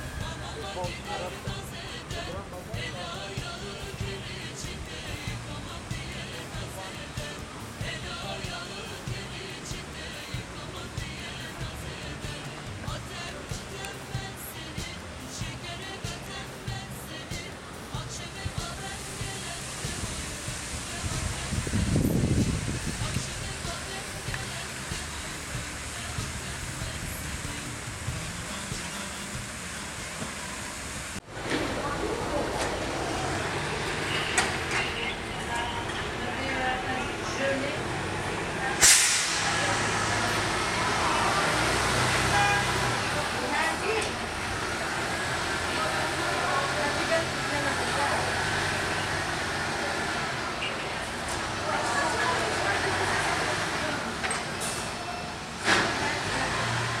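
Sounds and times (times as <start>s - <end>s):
people talking: 0.0s - 29.3s, 31.4s - 57.0s
city street traffic: 0.0s - 57.0s
murmur of people: 0.0s - 57.0s
tow truck engine running: 0.0s - 57.0s
distant voices: 17.9s - 57.0s.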